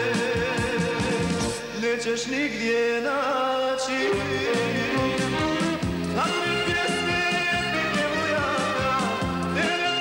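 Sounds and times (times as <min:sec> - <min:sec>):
folk-pop band playing: 0:00.0 - 0:10.0
bass line: 0:04.1 - 0:10.0.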